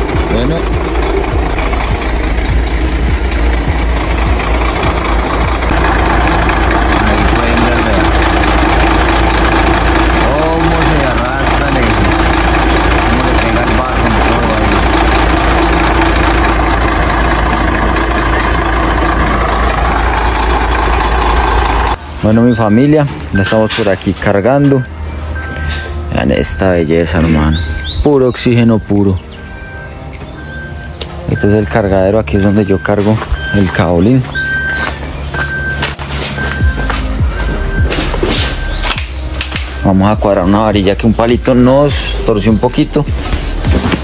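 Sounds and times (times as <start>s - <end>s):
truck engine idling: 0.0s - 44.0s.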